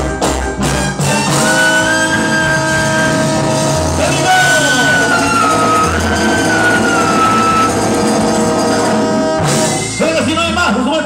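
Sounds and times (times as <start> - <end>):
trumpet section: 0.0 - 10.9
congas: 0.0 - 11.0
live salsa band playing: 0.0 - 11.0.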